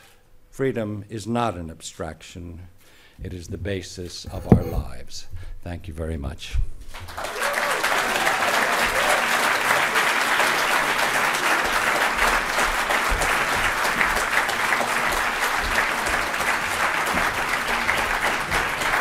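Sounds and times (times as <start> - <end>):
audience applauding: 7.0 - 19.0.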